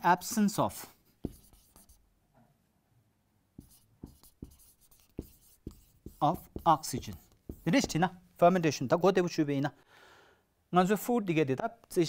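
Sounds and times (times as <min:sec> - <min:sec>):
marker writing on whiteboard: 0:00.0 - 0:02.0, 0:03.6 - 0:08.2.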